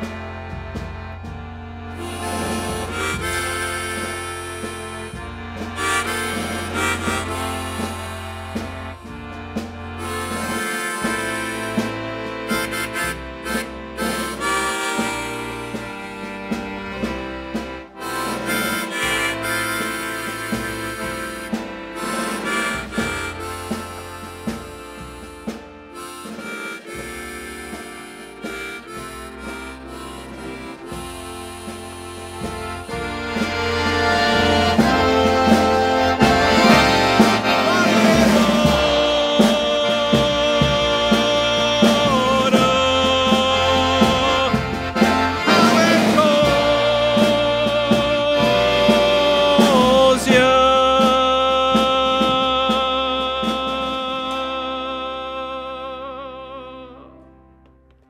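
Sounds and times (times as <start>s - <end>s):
low bass note: 0.0s - 49.4s
drum kit percussion: 0.0s - 54.3s
harmonica solo: 0.0s - 57.1s.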